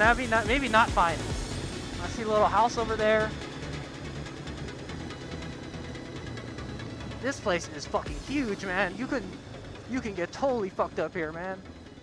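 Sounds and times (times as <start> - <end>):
atv engine running: 0.0 - 12.0
background music: 0.0 - 12.0.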